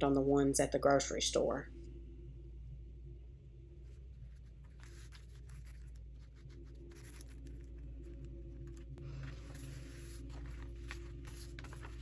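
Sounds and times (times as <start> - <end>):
low steady hum: 0.0 - 12.0
paintbrush scratching on paper: 4.2 - 7.8, 8.7 - 12.0
paper rustling: 4.2 - 12.0.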